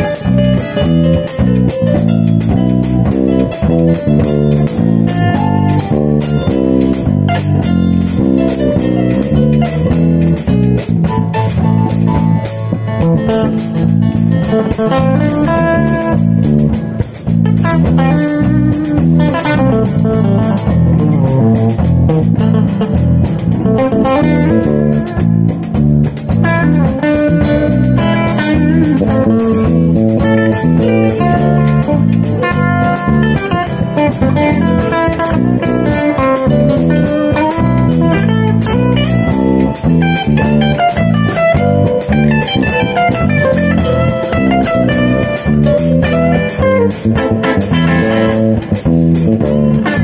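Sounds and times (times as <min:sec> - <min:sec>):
bass guitar: 0:00.0 - 0:50.0
drum kit with cymbals: 0:00.0 - 0:50.0
electric guitar lines: 0:00.0 - 0:50.0.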